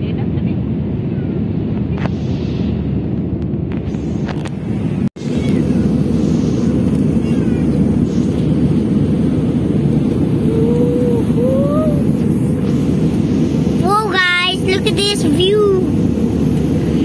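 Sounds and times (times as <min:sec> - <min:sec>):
jet airliner cabin noise: 0:00.0 - 0:17.0.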